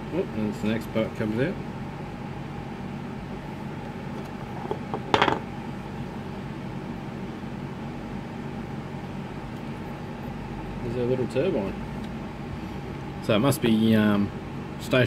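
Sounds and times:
low machine hum: 0:00.0 - 0:15.0.

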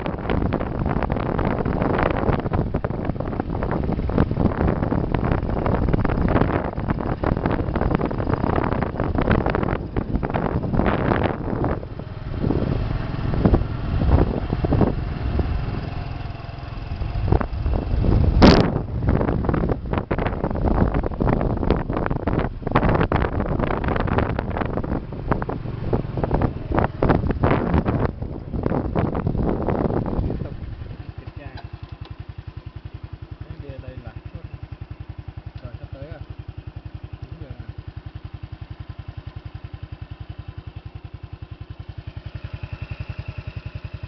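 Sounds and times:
motorcycle engine running: 0:00.0 - 0:44.0
wind buffeting microphone: 0:00.0 - 0:44.0.

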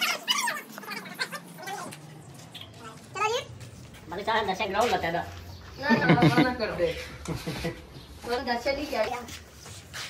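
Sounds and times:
domestic animal crying: 0:00.0 - 0:01.9.

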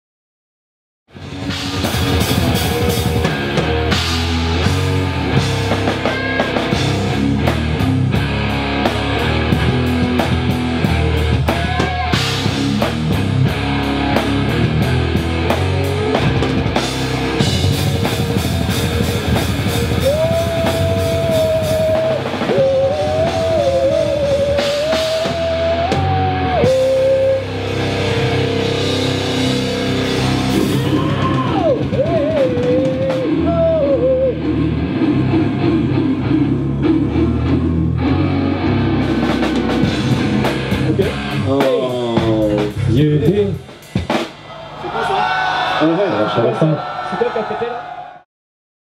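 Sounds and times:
heavy metal band playing live: 0:01.1 - 0:46.1
wavering lead guitar melody: 0:01.2 - 0:42.8.

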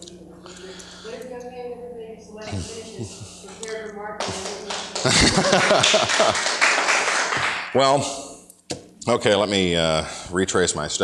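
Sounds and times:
people clapping: 0:03.6 - 0:08.2
audience laughing: 0:04.8 - 0:07.6.

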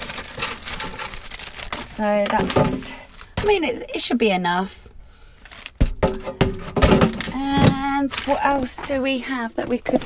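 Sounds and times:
sharp knocks and clunks: 0:05.8 - 0:08.0.

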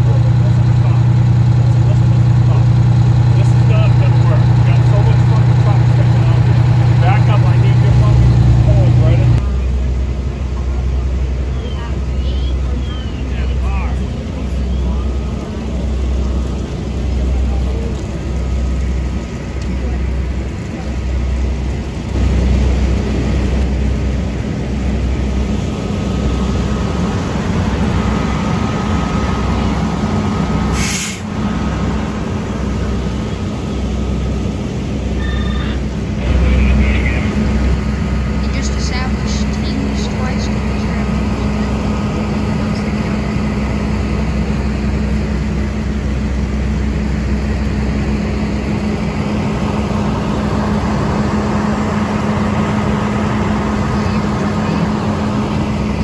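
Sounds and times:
voices: 0:00.0 - 0:30.6, 0:31.5 - 0:56.0
fire truck engine humming: 0:00.0 - 0:56.0.

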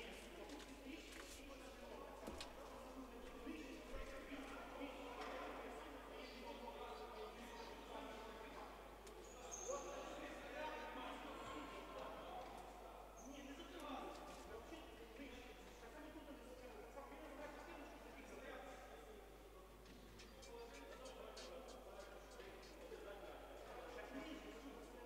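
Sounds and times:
faint indistinct voices: 0:00.0 - 0:25.0.

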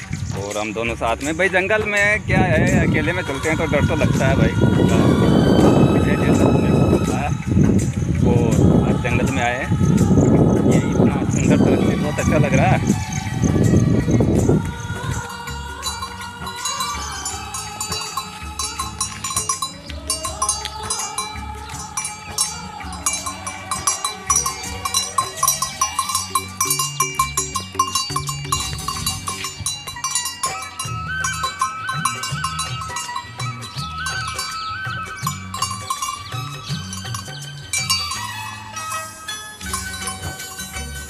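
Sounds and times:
background music with bass line: 0:00.0 - 0:41.0
cowbell clanking: 0:15.2 - 0:41.0.

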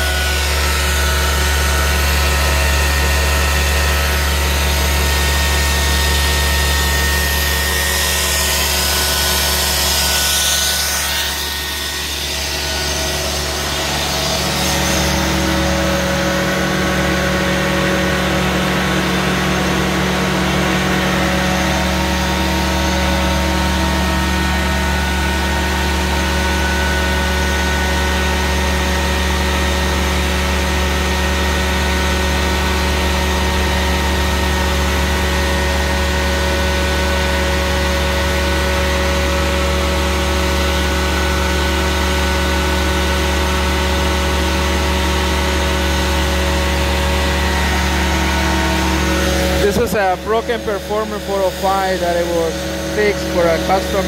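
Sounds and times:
carpet cleaning machine engine drone: 0:00.0 - 0:54.0.

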